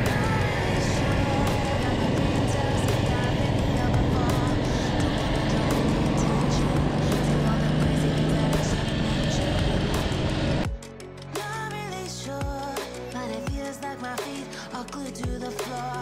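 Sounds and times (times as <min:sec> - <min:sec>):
motorcycle engine running: 0:00.0 - 0:10.9
faint music: 0:00.0 - 0:16.0.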